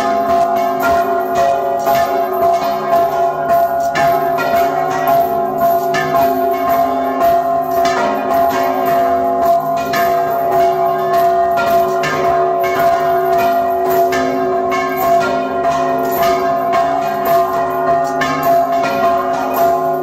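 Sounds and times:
church bells pealing: 0.0s - 20.0s.

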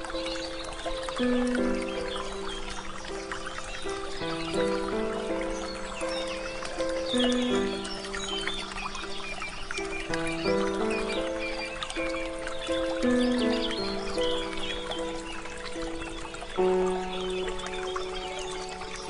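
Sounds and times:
calm instrumental music: 0.0s - 19.0s
small birds chirping: 0.0s - 19.0s
water trickling: 0.0s - 19.0s.

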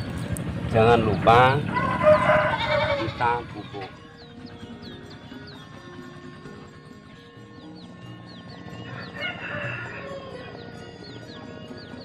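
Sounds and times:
background music with low pulse: 0.0s - 12.0s
rooster crowing: 1.6s - 3.4s, 8.8s - 10.6s.

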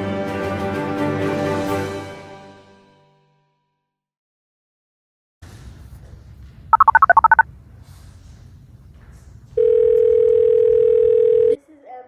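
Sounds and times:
keypad beeps: 6.8s - 7.4s
phone ringing tone: 6.8s - 7.4s, 9.6s - 11.6s.

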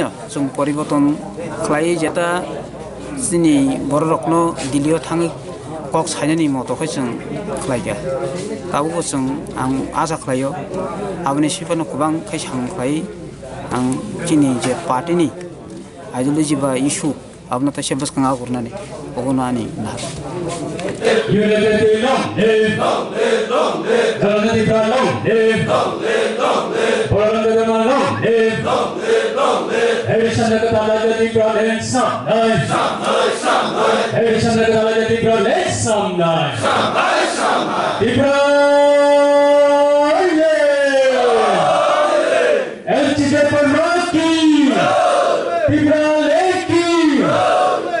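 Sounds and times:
crowd singing in unison: 20.8s - 30.8s, 32.3s - 35.2s, 36.5s - 38.2s, 41.2s - 42.8s, 44.6s - 45.7s, 47.2s - 48.0s.

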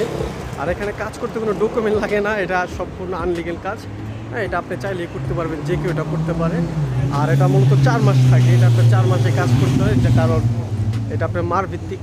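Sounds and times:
man talking: 0.0s - 12.0s
vehicle engine humming: 0.0s - 12.0s.

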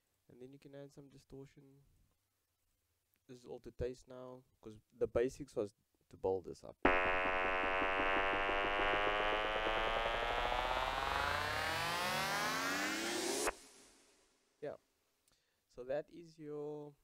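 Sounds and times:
buzzy synthesizer riser: 6.9s - 14.2s.

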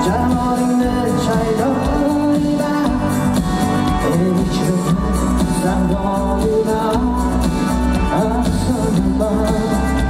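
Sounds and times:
man singing into a microphone: 0.0s - 10.0s
pop accompaniment: 0.0s - 10.0s.

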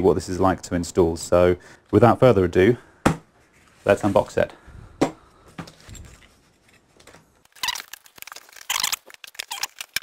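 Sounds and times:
packing tape tearing: 7.5s - 10.0s.

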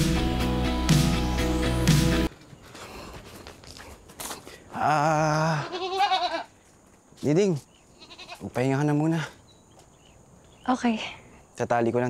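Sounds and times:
goat bleating: 5.1s - 6.5s, 7.9s - 8.6s.

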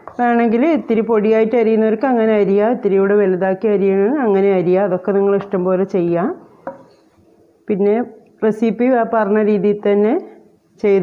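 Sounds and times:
woman speaking: 0.0s - 6.4s, 7.7s - 11.0s.

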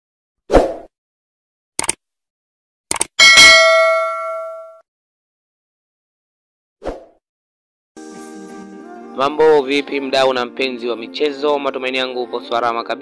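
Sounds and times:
quick clicks: 1.8s - 2.0s, 2.9s - 3.1s
bell-like ding: 3.2s - 4.8s.

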